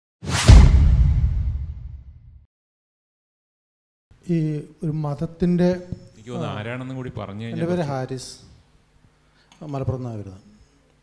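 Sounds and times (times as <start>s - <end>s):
deep boom: 0.2s - 2.4s
whoosh: 0.2s - 2.4s.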